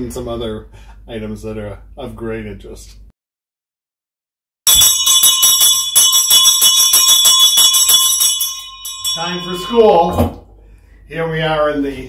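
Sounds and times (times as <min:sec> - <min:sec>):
school bell ringing: 0:04.7 - 0:10.2.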